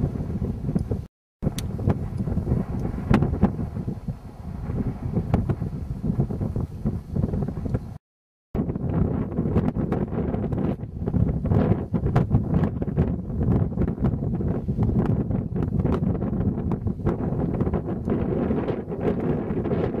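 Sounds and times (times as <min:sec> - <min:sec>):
wind buffeting microphone: 0:00.0 - 0:08.0, 0:08.6 - 0:20.0.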